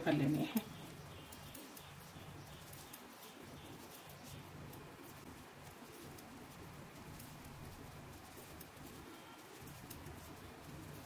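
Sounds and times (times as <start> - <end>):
knitting needles ticking: 0.0 - 11.0
low background hum: 0.0 - 11.0.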